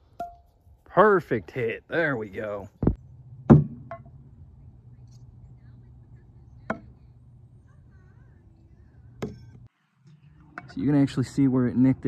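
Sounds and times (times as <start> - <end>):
faint low hum: 3.0 - 12.0.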